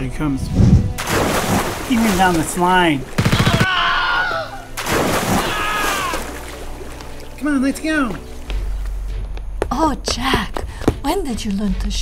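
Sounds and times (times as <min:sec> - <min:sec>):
automatic gunfire: 0:03.2 - 0:03.6
man crying out: 0:03.3 - 0:04.7, 0:05.4 - 0:06.3.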